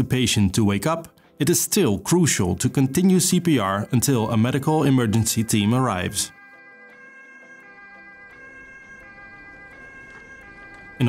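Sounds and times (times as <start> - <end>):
soft background music: 0.0 - 11.0
two-tone ambulance siren: 5.6 - 11.0.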